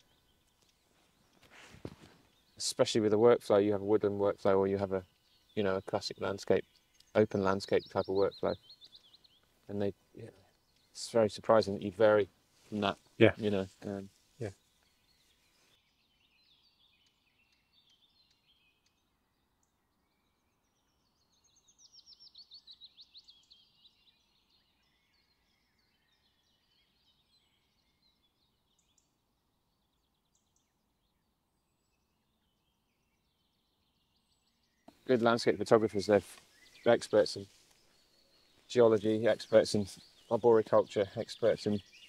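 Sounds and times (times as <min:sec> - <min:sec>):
distant bird chirps: 0:00.0 - 0:42.0
songbird trill: 0:00.0 - 0:42.0.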